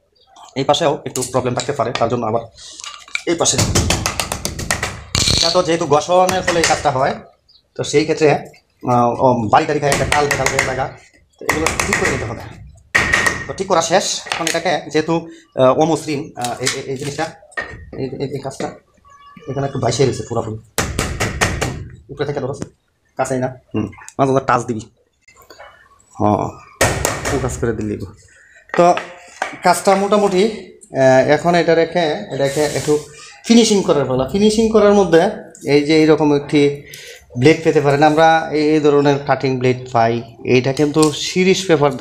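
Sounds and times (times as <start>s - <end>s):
man talking: 0.4s - 3.8s, 5.3s - 12.7s, 13.5s - 20.7s, 22.0s - 42.0s.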